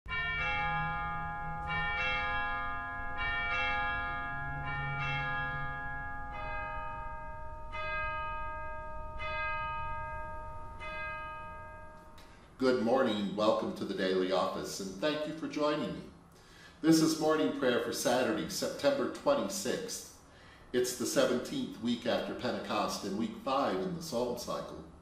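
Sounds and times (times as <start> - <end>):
church bells tolling: 0.1 - 15.9.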